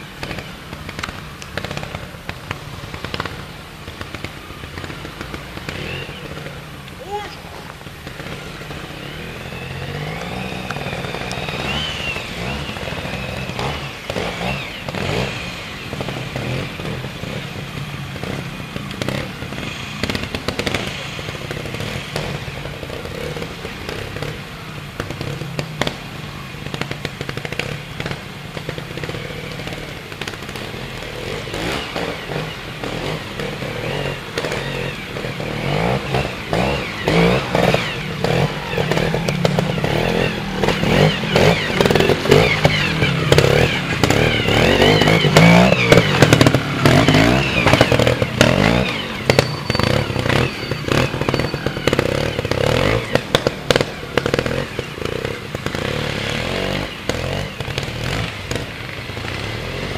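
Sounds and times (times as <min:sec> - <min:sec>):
cracks and clatter over rocks: 0:00.0 - 0:07.0, 0:18.2 - 0:59.9
motorcycle engine revving: 0:00.0 - 0:59.9.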